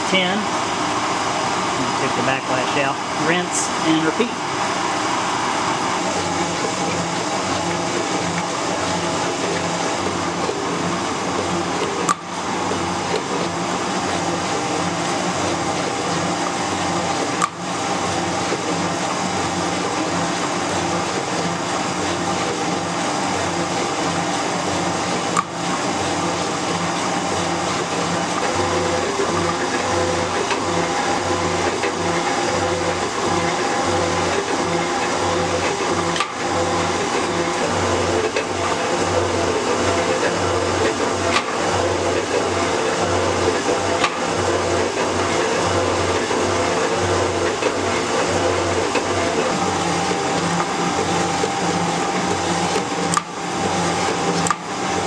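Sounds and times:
metal shaper running: 1.7s - 55.0s.

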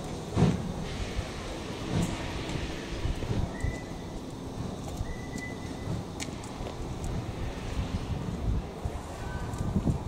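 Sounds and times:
steam locomotive chuffing: 0.0s - 10.0s.

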